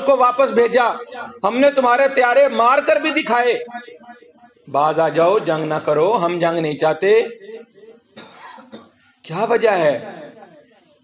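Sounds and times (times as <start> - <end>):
man speaking: 0.0 - 7.7, 9.2 - 10.5
brief cough: 8.1 - 9.2.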